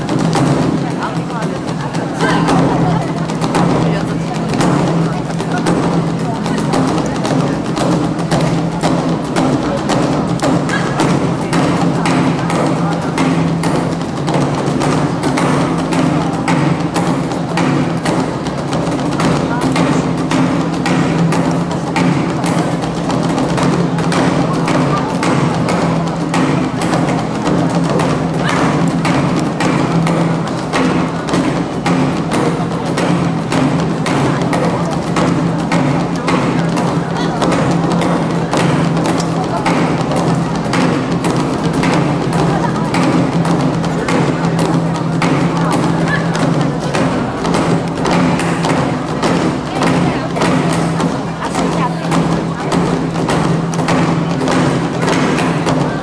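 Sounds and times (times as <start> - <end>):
sticks beating barrel drums: 0.0 - 56.0.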